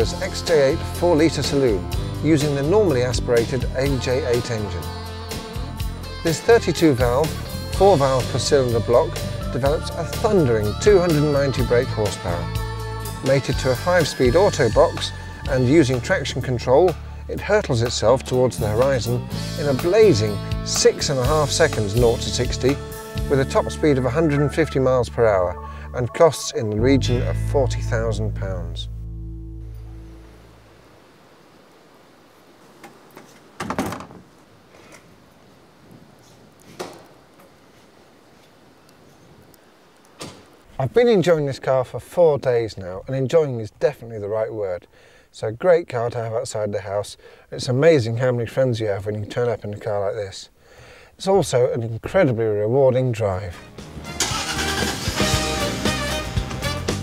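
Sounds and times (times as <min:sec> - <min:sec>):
music: 0:00.0 - 0:30.5, 0:53.5 - 0:57.0
car engine starting and idling: 0:26.7 - 0:30.6, 0:53.7 - 0:56.3
door shutting thunk: 0:40.2 - 0:40.5.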